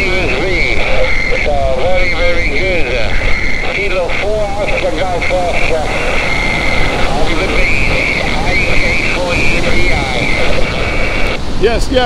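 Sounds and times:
garbled radio voice: 0:00.0 - 0:12.0
radio band noise hiss: 0:00.0 - 0:12.0.

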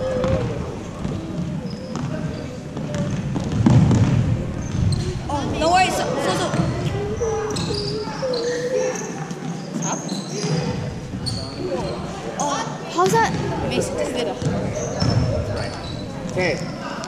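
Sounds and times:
basketball bouncing on hardwood floor: 0:01.0 - 0:02.2, 0:02.8 - 0:04.9.

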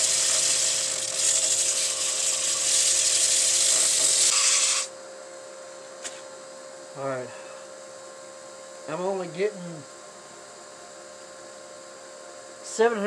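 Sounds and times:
lathe humming: 0:00.0 - 0:04.9
sanding pad rasping on wood: 0:00.0 - 0:04.9.

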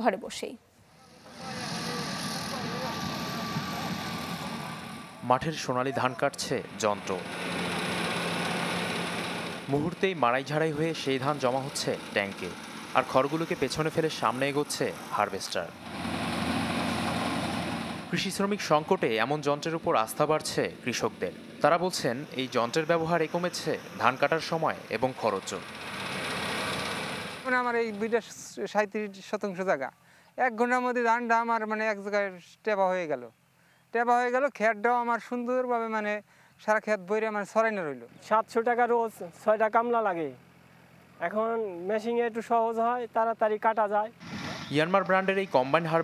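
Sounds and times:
person speaking: 0:00.0 - 0:07.3
combine harvester droning: 0:00.8 - 0:28.6, 0:44.1 - 0:46.0
man's voice: 0:05.2 - 0:07.2.

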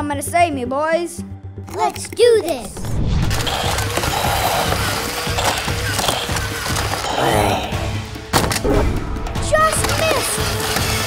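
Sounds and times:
toy cars rattling on plastic track: 0:03.3 - 0:07.2, 0:09.8 - 0:11.0.

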